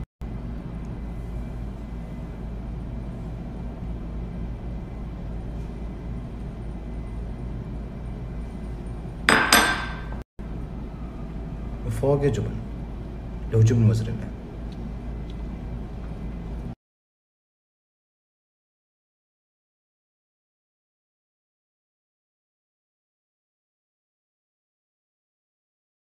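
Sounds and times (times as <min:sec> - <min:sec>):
low background hum: 0:00.0 - 0:16.8
kitchenware clink: 0:09.3 - 0:10.2.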